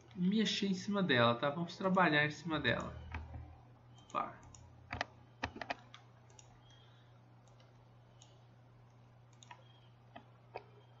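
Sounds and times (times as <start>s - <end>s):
faint low hum: 0.0s - 11.0s
mouse and keyboard clicks: 2.8s - 6.8s, 7.4s - 10.8s.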